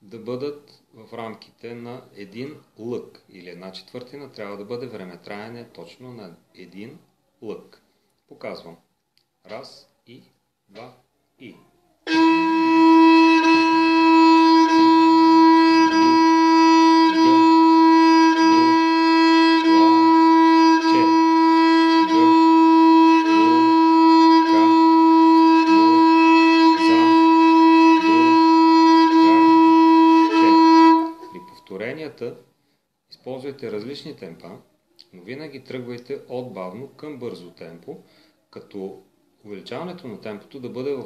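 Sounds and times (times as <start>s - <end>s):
bowed string instrument note: 12.1s - 31.8s
man counting: 19.9s - 29.5s.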